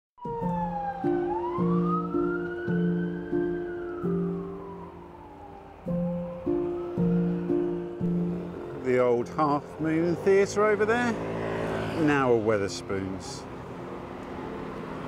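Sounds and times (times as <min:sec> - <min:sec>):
police siren wailing: 0:00.2 - 0:09.0
background music: 0:00.2 - 0:15.0.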